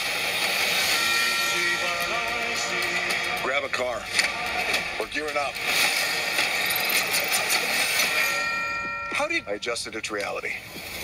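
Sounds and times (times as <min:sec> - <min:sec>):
sustained ringing chord: 0:00.8 - 0:03.5, 0:08.1 - 0:09.8.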